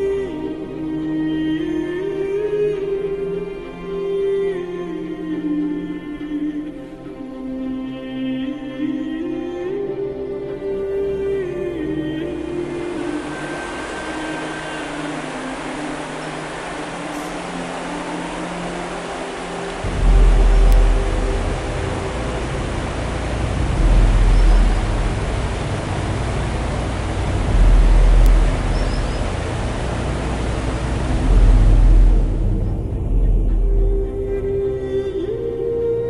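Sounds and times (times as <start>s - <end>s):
background music: 0.0s - 36.0s
river water rushing over stones: 11.7s - 33.1s
wind rumbling on microphone: 12.8s - 35.9s.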